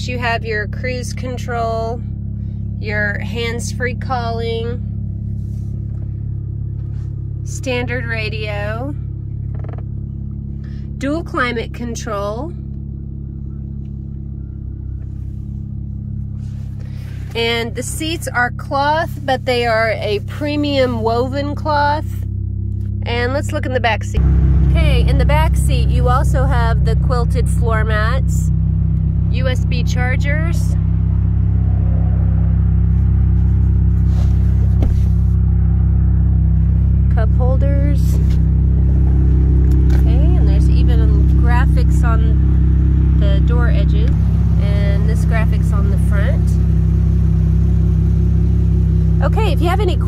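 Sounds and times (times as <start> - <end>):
car engine idling: 0.0 - 50.0
soft rustle: 32.8 - 35.4.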